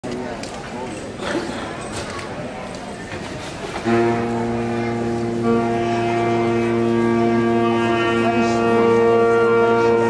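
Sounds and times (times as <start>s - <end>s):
saxophone quartet holding a chord: 3.8s - 10.0s.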